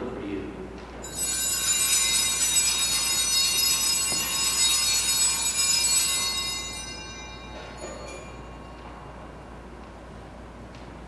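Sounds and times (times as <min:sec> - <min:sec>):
altar bells ringing: 0:01.0 - 0:10.2.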